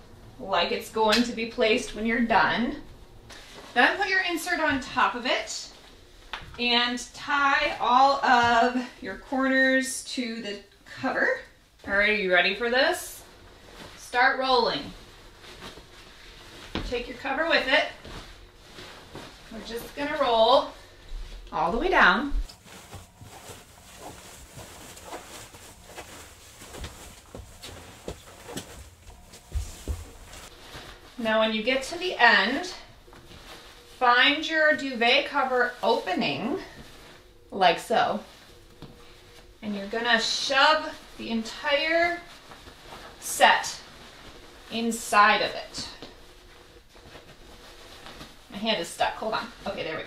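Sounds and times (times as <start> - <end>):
bedding rustling: 0.1 - 50.0
soft pats on bedding: 22.4 - 31.2.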